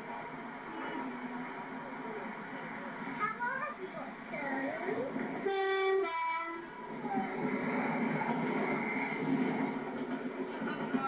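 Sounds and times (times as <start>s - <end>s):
train running noise: 0.0s - 11.0s
train two-tone horn: 5.4s - 6.8s.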